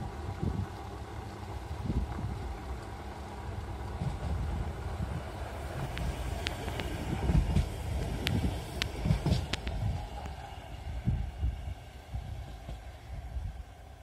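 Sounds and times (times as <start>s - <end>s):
funicular car rumbling on rails: 0.0s - 14.0s.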